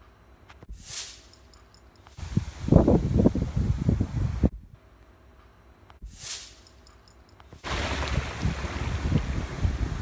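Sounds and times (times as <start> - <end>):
wind buffeting microphone: 2.2 - 4.6, 7.6 - 10.0.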